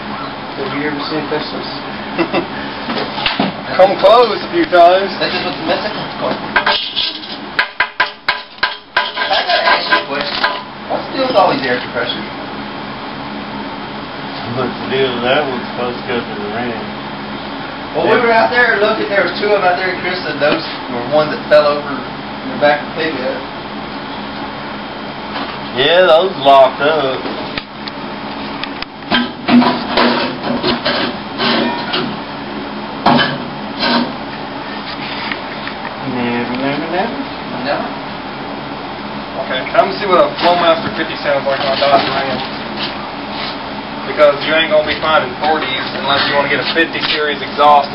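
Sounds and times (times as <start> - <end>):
workshop clatter: 0.1 - 12.3, 18.0 - 22.0, 28.5 - 32.3, 33.0 - 36.0, 39.5 - 47.9.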